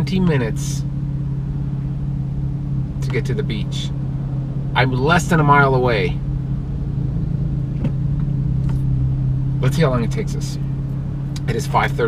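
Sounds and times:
car engine droning: 0:00.0 - 0:12.0.

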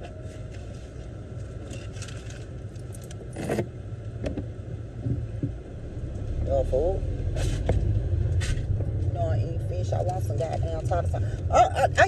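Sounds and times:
rustling and clinking: 0:01.4 - 0:03.6.

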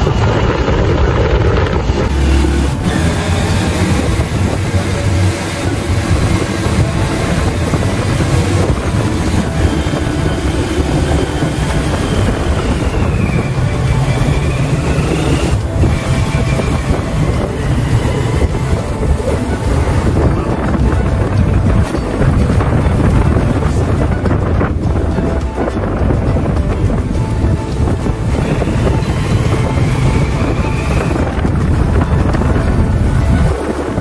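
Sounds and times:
vehicle road and engine noise: 0:00.0 - 0:34.0.

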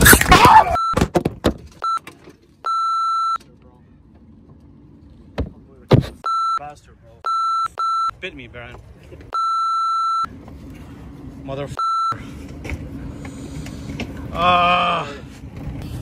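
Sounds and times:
censor bleeps: 0:06.2 - 0:06.6, 0:07.2 - 0:08.1, 0:09.3 - 0:10.3
person swearing: 0:14.3 - 0:15.3.

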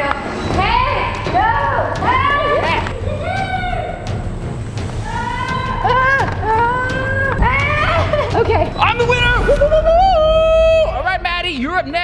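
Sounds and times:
excited voices shrieking: 0:05.0 - 0:08.3.

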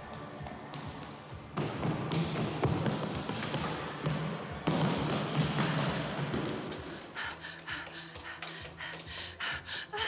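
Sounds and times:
woman panting: 0:06.8 - 0:10.0.

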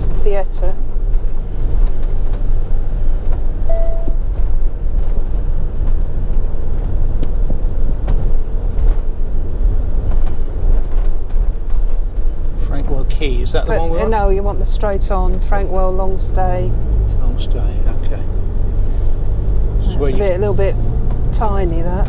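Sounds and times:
motorhome engine and tyre rumble: 0:00.0 - 0:22.0
short beep: 0:03.6 - 0:04.2.

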